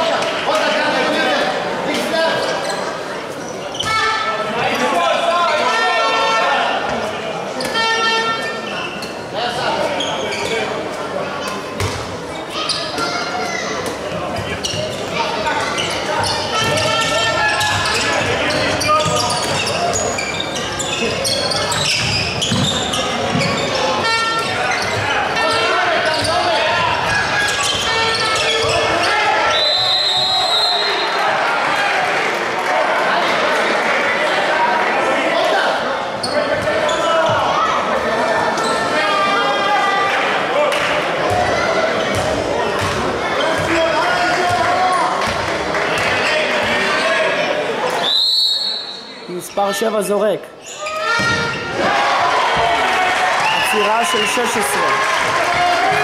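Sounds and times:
ball bouncing on wooden court: 0:11.8 - 0:12.0, 0:21.7 - 0:23.6, 0:42.1 - 0:43.8
players calling out: 0:12.5 - 0:32.3
referee's whistle: 0:29.4 - 0:31.2, 0:48.0 - 0:49.2.

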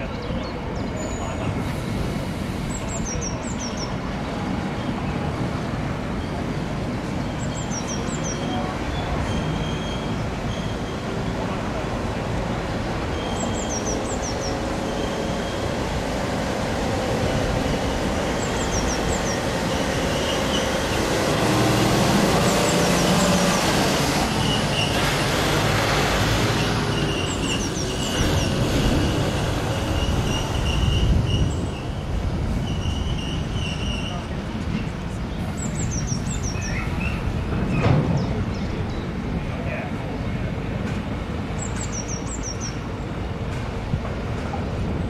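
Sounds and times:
train wheels rumbling on rails: 0:00.0 - 0:45.0
wheel squeal: 0:32.6 - 0:34.3.

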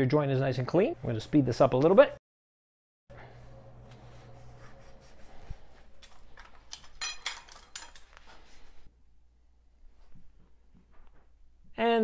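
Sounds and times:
light metallic clinks: 0:06.0 - 0:08.2.

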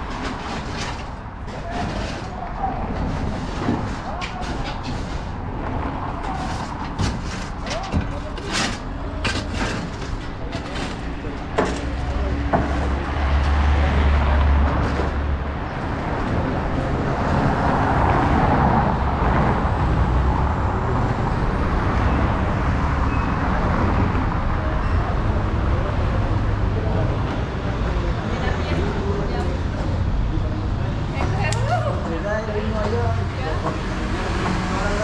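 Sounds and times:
tyre and road rumble: 0:00.0 - 0:35.0.

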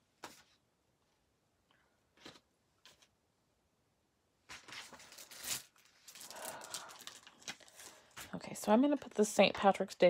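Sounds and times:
paper rustling and crinkling: 0:04.5 - 0:09.2.

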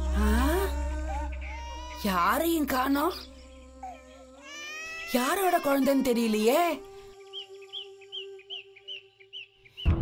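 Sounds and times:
bird chirping: 0:07.1 - 0:10.0.

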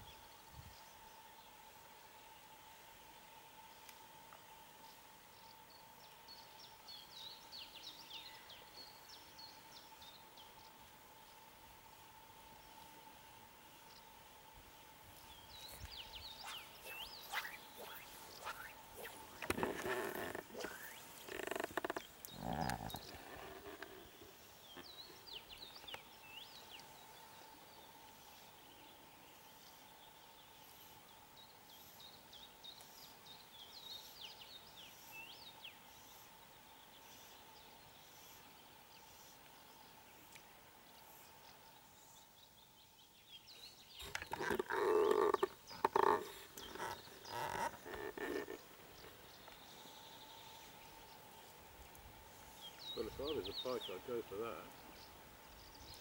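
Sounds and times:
small birds chirping: 0:15.1 - 0:56.0
loud animal calls: 0:16.4 - 0:23.9, 0:44.0 - 0:48.6.

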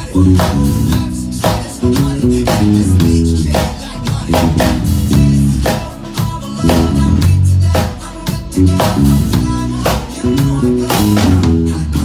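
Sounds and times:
drum kit groove: 0:00.0 - 0:12.0
electric bass line: 0:00.0 - 0:12.0.

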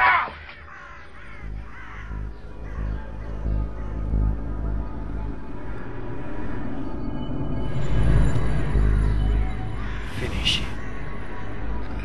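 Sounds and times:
bird harsh calls: 0:00.0 - 0:12.0
low pulsing music drone: 0:00.5 - 0:12.0.

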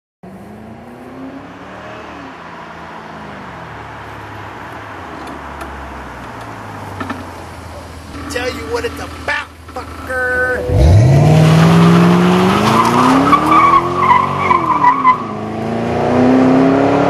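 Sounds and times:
car engine driving by: 0:00.2 - 0:17.0.

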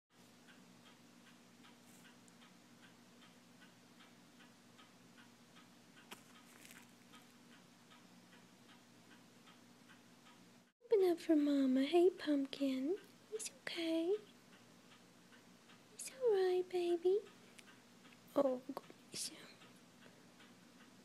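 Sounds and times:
faint regular ticking: 0:00.1 - 0:21.0
low steady hum: 0:00.1 - 0:21.0.

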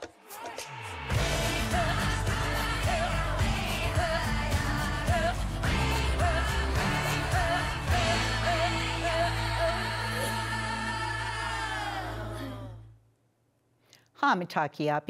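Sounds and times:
news theme music with sung phrase: 0:01.1 - 0:12.5.

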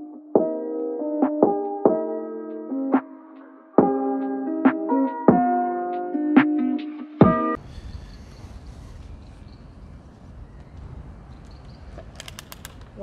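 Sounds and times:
background music held chord: 0:00.0 - 0:07.6
road noise: 0:07.6 - 0:13.0
wind rumble: 0:07.6 - 0:13.0
sharp clicks: 0:10.6 - 0:13.0.

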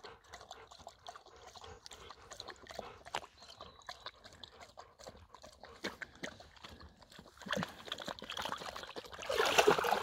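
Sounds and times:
dogs lapping water: 0:00.0 - 0:10.0.

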